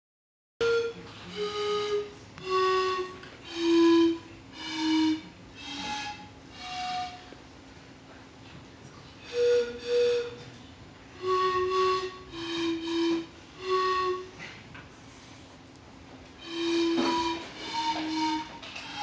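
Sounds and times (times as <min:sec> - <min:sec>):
breathy pan flute notes: 0:00.6 - 0:07.4, 0:09.2 - 0:15.5, 0:16.4 - 0:19.0.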